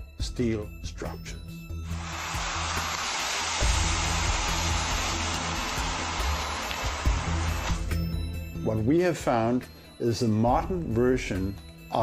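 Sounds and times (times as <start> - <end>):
low background music: 0.0 - 12.0
thermite burning with hissing rush: 2.0 - 7.9.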